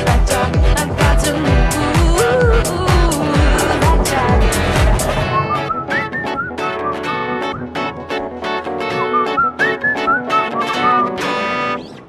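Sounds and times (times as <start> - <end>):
steady beat: 0.0 - 8.0
strummed guitar chords: 0.0 - 12.0
whistled melody: 5.2 - 8.0, 8.8 - 11.9.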